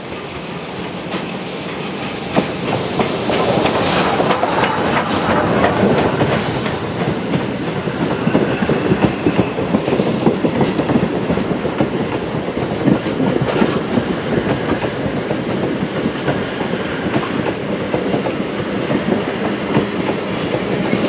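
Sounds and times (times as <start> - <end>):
train wheels clickety-clack: 0.0 - 21.0.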